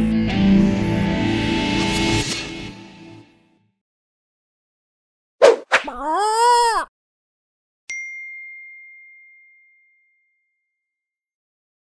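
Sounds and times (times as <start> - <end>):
bell-like ding: 7.9 - 10.7.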